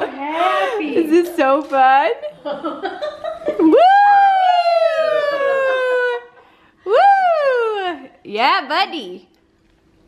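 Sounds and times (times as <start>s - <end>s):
woman whooping: 3.6s - 8.2s.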